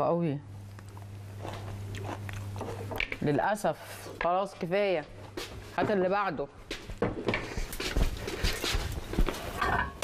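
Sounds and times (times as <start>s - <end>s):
person chewing crunchy salad: 0.6s - 3.2s.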